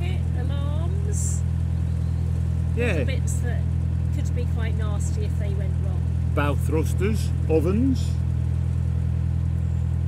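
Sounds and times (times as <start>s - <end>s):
boat engine humming: 0.0s - 10.0s.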